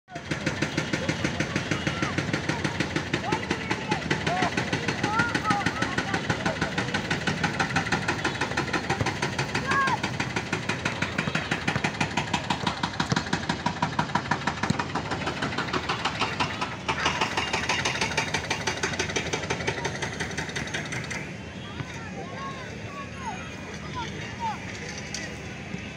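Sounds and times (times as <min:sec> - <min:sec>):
children calling: 0:00.1 - 0:13.3, 0:14.2 - 0:25.8
pulsing engine running: 0:00.1 - 0:21.8.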